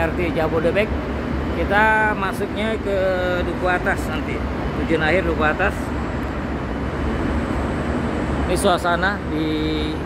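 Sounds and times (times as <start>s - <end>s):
low rumble and hiss: 0.0s - 10.0s.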